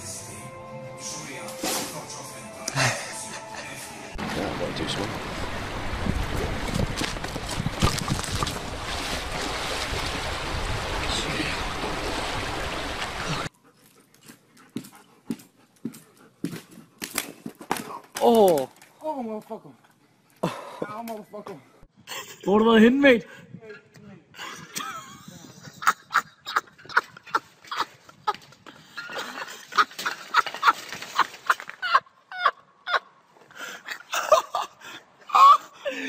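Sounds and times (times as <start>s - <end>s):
creek water rushing: 4.1s - 13.5s.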